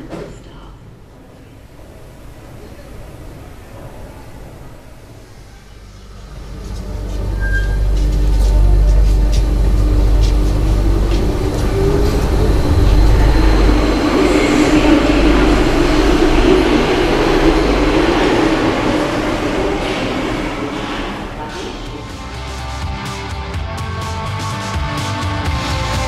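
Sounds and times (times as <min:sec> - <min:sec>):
train accelerating rumble: 0:00.0 - 0:24.7
train running gear whine: 0:01.2 - 0:23.5.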